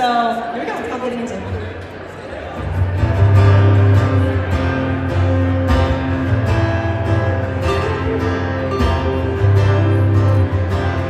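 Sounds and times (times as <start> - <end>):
acoustic guitars strumming: 2.6 - 11.0.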